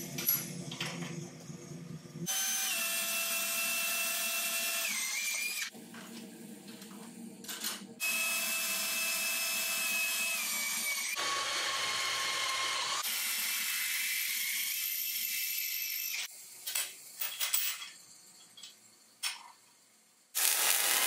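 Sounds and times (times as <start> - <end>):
cordless drill boring through steel: 2.3 - 5.7, 8.0 - 16.3, 20.4 - 21.0.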